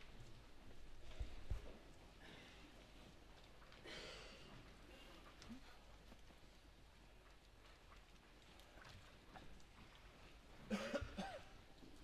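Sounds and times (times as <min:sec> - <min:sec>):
person coughing: 0:10.7 - 0:11.5.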